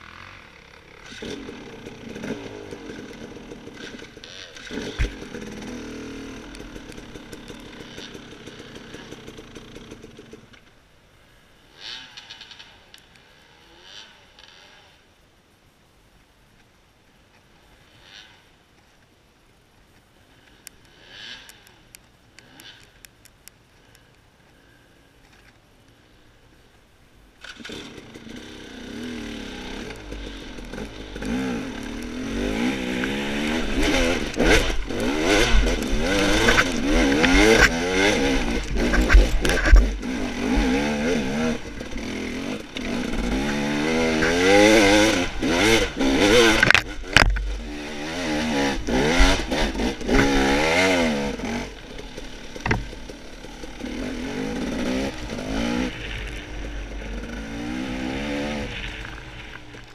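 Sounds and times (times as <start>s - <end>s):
dirt bike engine revving: 0.0s - 10.4s, 27.4s - 59.9s
bike knocks and clatter: 52.6s - 53.0s.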